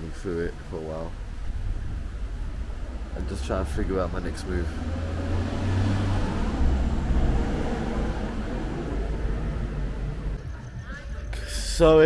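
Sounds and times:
wind gusting across microphone: 0.0s - 11.2s.

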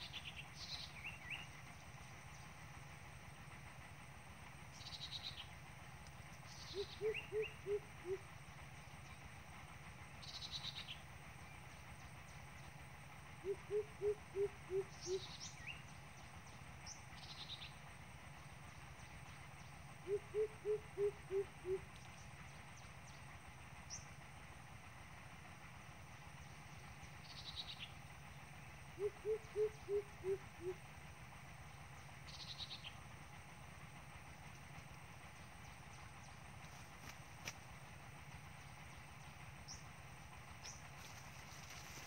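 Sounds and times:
coucal deep hooting call: 6.7s - 8.3s, 13.4s - 15.3s, 20.0s - 21.9s, 28.9s - 30.9s.

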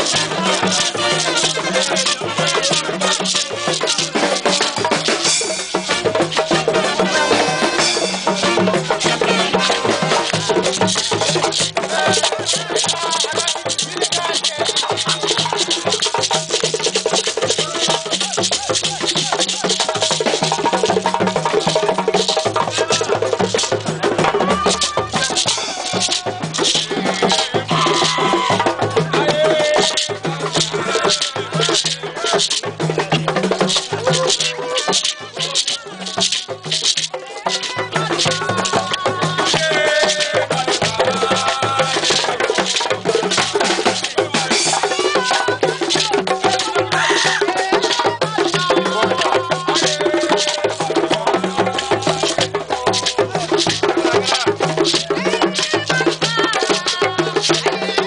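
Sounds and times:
beaded gourd shaker: 0.0s - 58.0s
hand drums playing rhythm: 0.0s - 58.0s
voices: 0.0s - 58.0s.

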